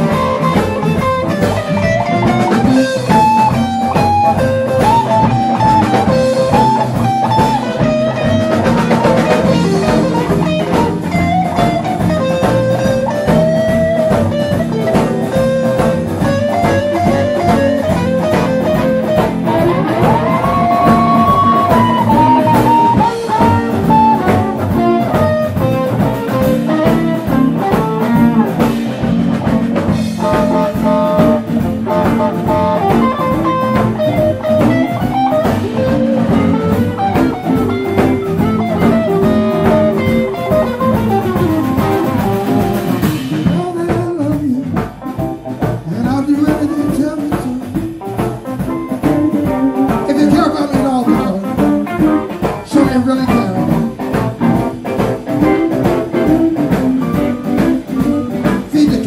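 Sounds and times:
bass guitar: 0.0 - 59.0
drum kit: 0.0 - 59.0
electric guitar lead: 0.0 - 59.0.

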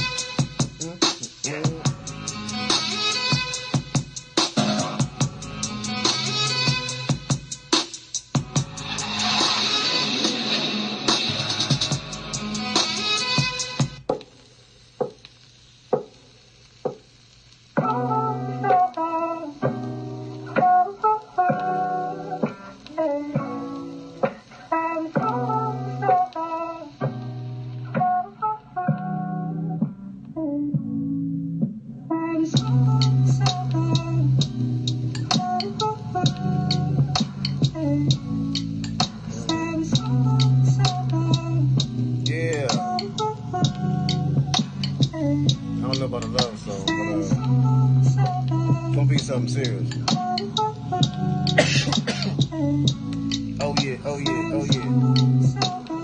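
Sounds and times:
hip-hop beat: 0.0 - 14.4, 17.8 - 30.0, 30.7 - 56.0
hi-hat clicks: 32.5 - 56.0.

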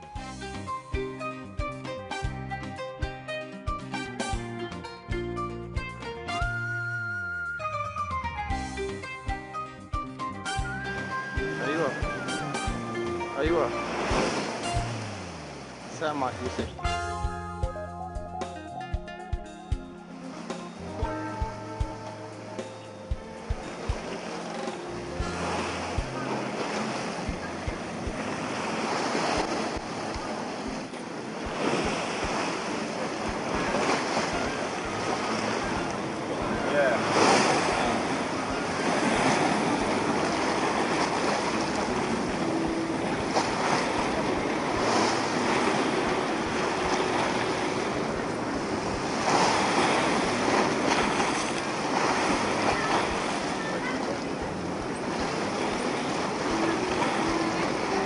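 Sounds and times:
surf breaking against rocks: 11.0 - 16.9, 23.8 - 58.0.

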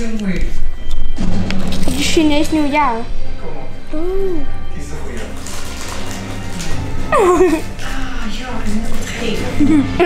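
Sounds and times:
television music: 0.0 - 10.0
television voice: 1.7 - 10.0.

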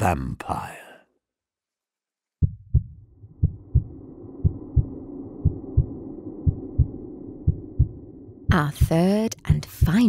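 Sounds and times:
heartbeat double thump: 2.4 - 10.0
low steady drone: 3.0 - 8.7.

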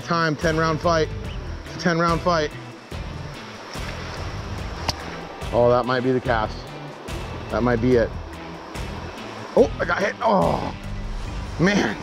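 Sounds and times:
fast-flowing river rushing: 0.0 - 7.6
background music: 0.0 - 12.0.

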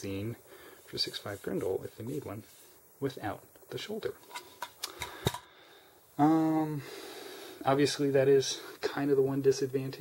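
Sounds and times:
cartridges clicking and tapping: 3.5 - 5.5.

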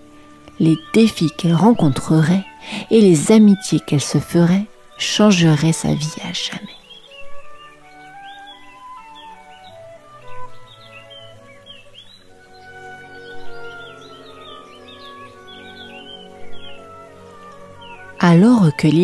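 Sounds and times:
birds chirping: 0.0 - 19.0
music of long held tones: 0.0 - 19.0.

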